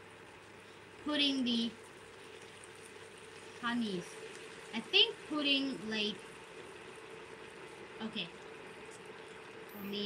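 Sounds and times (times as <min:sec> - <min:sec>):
sauce bubbling in a pan: 0:00.0 - 0:10.0.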